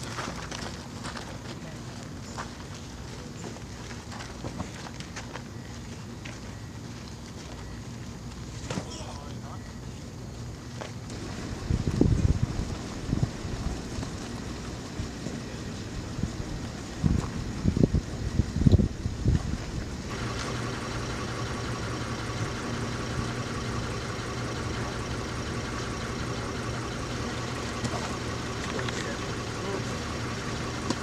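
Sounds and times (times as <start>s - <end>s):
steady engine hum: 0.0s - 31.0s.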